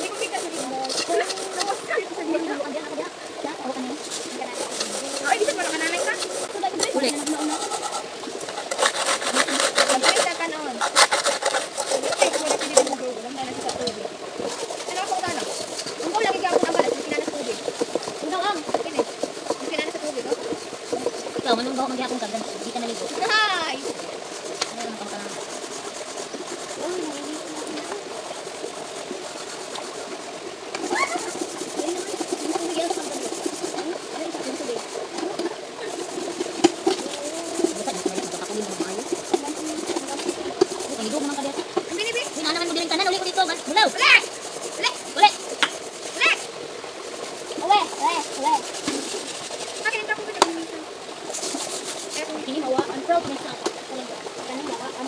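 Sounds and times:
people talking: 0.0s - 8.1s, 9.1s - 11.0s, 11.8s - 23.9s, 24.6s - 25.4s, 26.7s - 28.1s, 30.8s - 36.2s, 36.9s - 45.4s, 46.1s - 46.5s, 47.6s - 50.9s, 52.1s - 55.0s
pots scrubbed in water: 0.0s - 55.0s.

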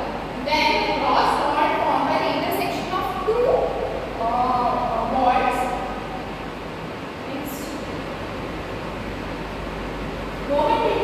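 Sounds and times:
low hum: 0.0s - 11.0s
room hiss: 0.0s - 11.0s.

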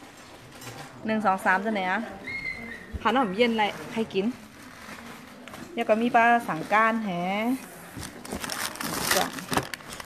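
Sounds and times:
plastic wrappers crinkling: 3.2s - 10.0s.

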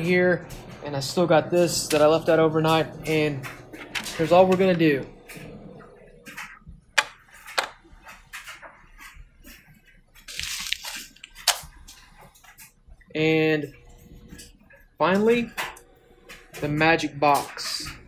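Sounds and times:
plastic crinkling: 7.2s - 12.8s.

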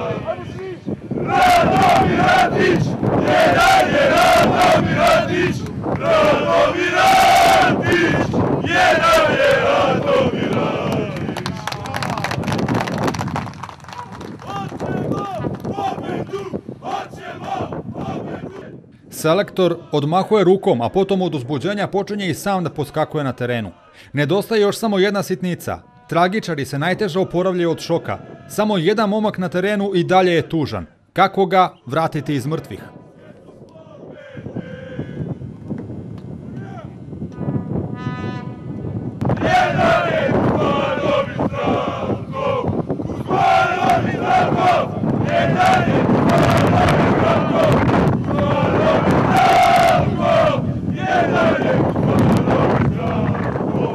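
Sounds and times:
crowd of fans shouting and chanting: 0.0s - 12.4s, 14.0s - 18.9s, 19.5s - 20.5s, 23.4s - 24.2s, 26.8s - 28.9s, 32.0s - 37.2s, 39.3s - 53.9s.

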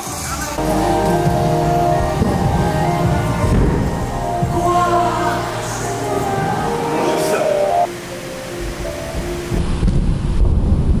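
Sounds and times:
background music: 0.5s - 9.8s.

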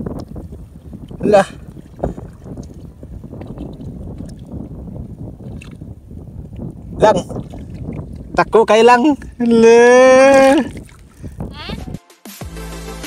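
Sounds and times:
seawater sloshing: 0.0s - 11.6s.

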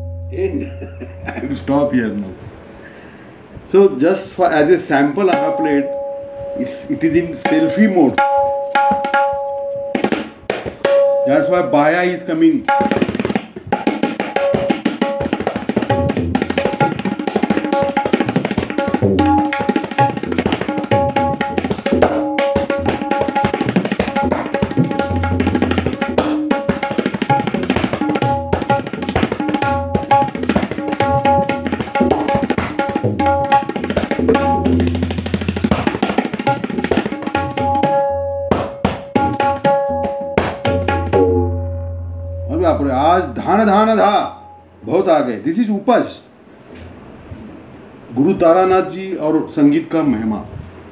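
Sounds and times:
deep bass drum hum: 0.0s - 2.7s
tabla strokes: 0.0s - 3.7s, 5.2s - 12.0s, 12.6s - 44.2s
man's voice: 0.3s - 2.4s.

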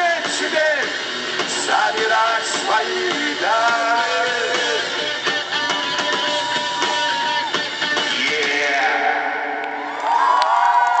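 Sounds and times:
live rock band playing: 0.0s - 9.4s.

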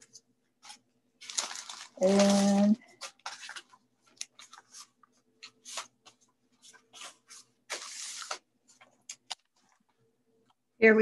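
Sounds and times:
paper rustling and tapping: 0.0s - 9.9s.

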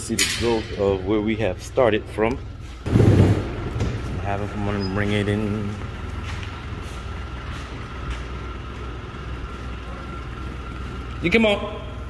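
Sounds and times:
forklift engine low rumble: 0.0s - 12.0s.

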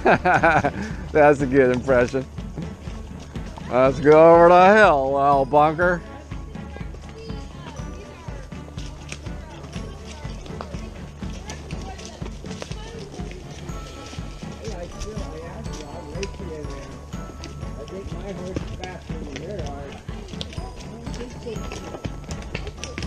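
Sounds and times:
hooves clopping on dirt: 0.0s - 23.0s.

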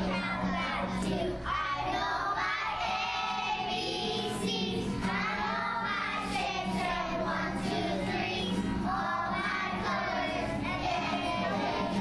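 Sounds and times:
acoustic guitar: 0.0s - 12.0s
children singing together: 0.0s - 12.0s.

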